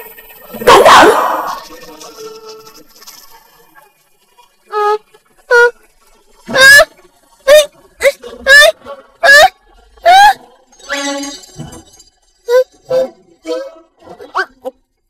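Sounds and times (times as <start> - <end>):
cartoon character wavering cries: 0.7 - 1.6, 6.5 - 6.9, 7.5 - 10.4.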